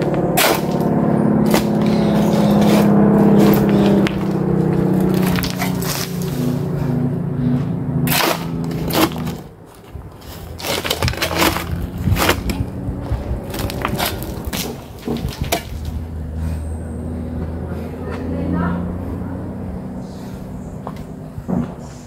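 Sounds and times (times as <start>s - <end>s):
shovel scraping stony soil: 0.0s - 16.0s
steady pitched hum: 0.0s - 22.0s.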